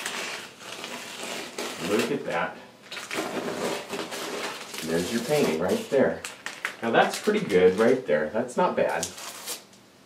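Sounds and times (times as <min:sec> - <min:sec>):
plastic sheet peeling and crinkling: 0:00.0 - 0:08.1, 0:08.8 - 0:09.8.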